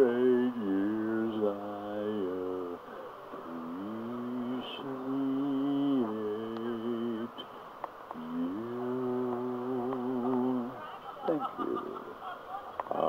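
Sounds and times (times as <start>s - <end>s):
man humming low notes: 0.0s - 7.4s, 8.1s - 10.8s.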